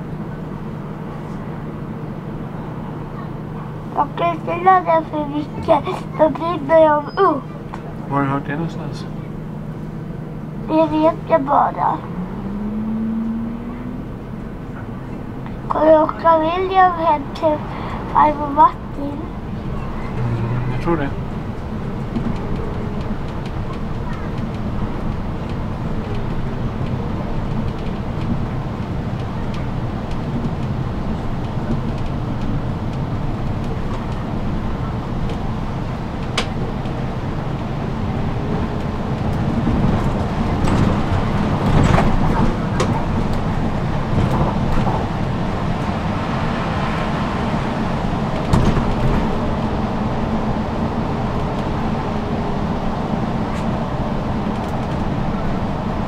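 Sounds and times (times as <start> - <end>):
bus engine and road noise: 0.0 - 56.0.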